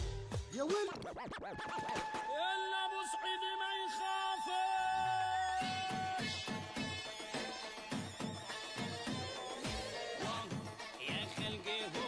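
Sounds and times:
dance music: 0:00.0 - 0:12.0
record scratch: 0:00.7 - 0:02.0.

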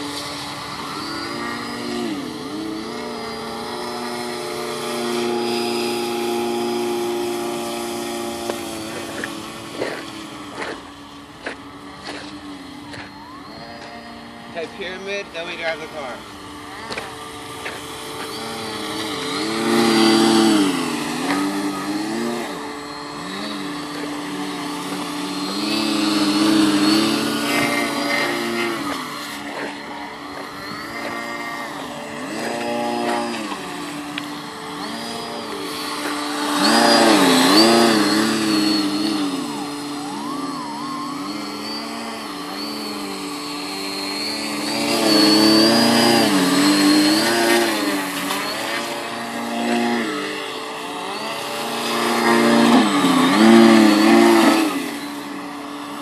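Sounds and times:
rc car electric motor whining: 0:00.0 - 0:56.0.

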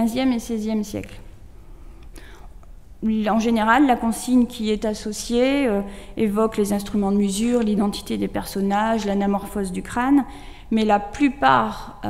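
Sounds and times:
faint room hiss: 0:00.0 - 0:12.0
faint breath: 0:01.6 - 0:02.6, 0:05.9 - 0:06.2, 0:10.3 - 0:10.7.

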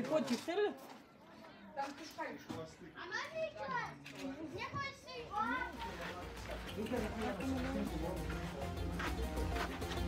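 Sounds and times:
group of people talking: 0:00.0 - 0:10.0.

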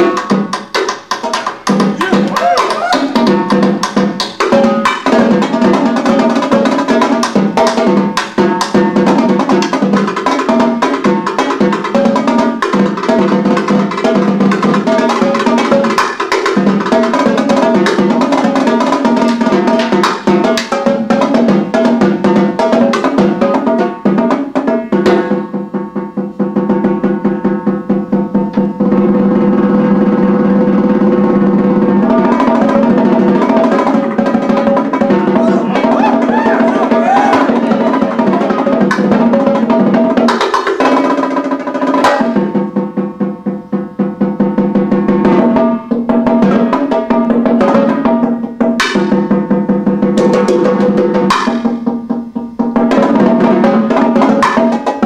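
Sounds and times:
marching tenor drums: 0:01.7 - 0:10.1, 0:28.8 - 0:41.0.

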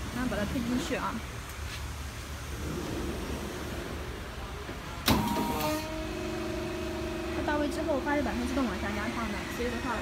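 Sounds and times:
heat press running: 0:05.0 - 0:10.0
hydraulic whine: 0:05.0 - 0:10.0.

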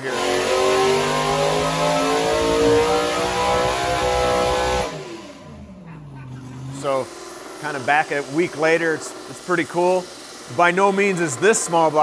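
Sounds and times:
engine revving under load: 0:00.0 - 0:08.6.

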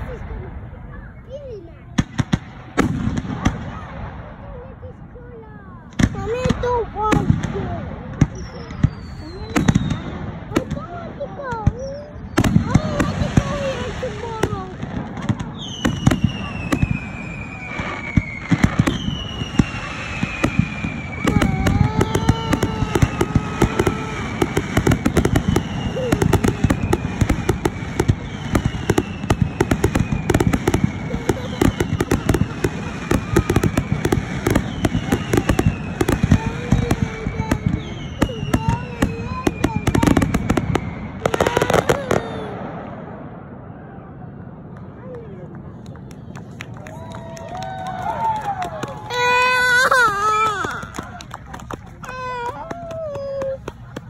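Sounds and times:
fireworks bangs and crackling: 0:00.0 - 0:54.0
fireworks whistles falling in pitch: 0:08.2 - 0:10.3, 0:15.2 - 0:42.7.

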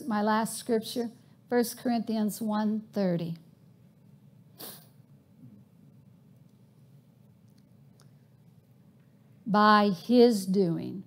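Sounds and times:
sharp intake of breath: 0:04.6 - 0:05.0.

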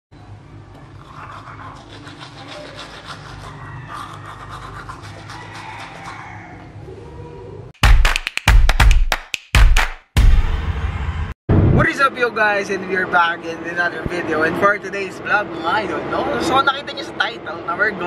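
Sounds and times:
toothbrush scrubbing teeth: 0:00.9 - 0:06.3
loud music with heavy bass: 0:07.8 - 0:10.7.

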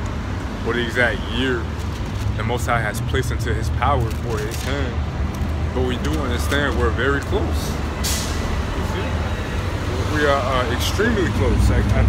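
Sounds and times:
heavy traffic rumbling: 0:00.0 - 0:12.0
large vehicle running close: 0:00.0 - 0:12.0.

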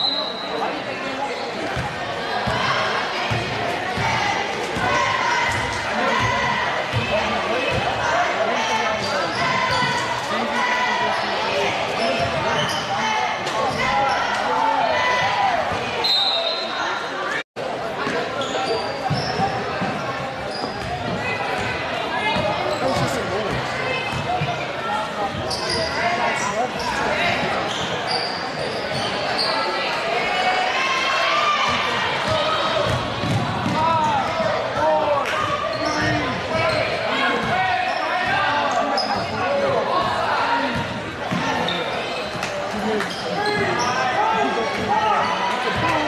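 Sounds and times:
people calling out in a hall: 0:00.0 - 0:46.0
sneaker squeaks: 0:08.6 - 0:10.2, 0:12.0 - 0:14.4, 0:18.0 - 0:24.6, 0:25.3 - 0:29.8, 0:35.4 - 0:39.5, 0:40.4 - 0:45.3.

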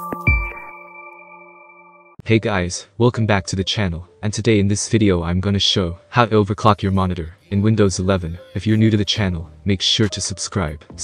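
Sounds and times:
chime-like chord: 0:00.0 - 0:02.2
electronic logo jingle: 0:00.0 - 0:02.2.

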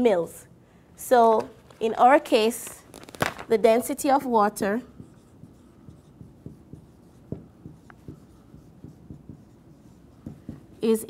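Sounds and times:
marker writing on whiteboard: 0:04.0 - 0:11.0.

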